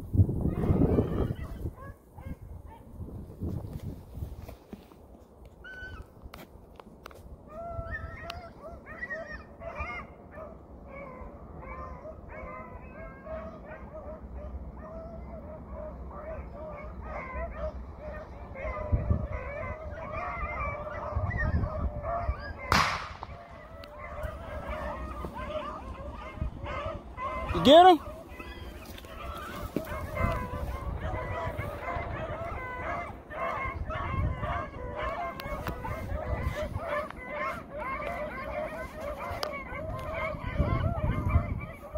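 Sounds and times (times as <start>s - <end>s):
hounds baying: 0.5s - 2.9s, 7.5s - 41.9s.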